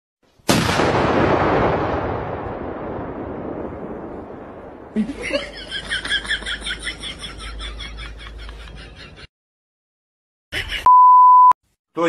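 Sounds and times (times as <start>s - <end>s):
electronic censor beep: 10.9s - 11.6s.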